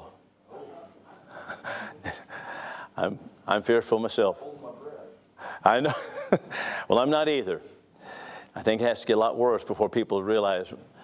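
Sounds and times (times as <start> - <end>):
man sighing: 0.7 - 2.8.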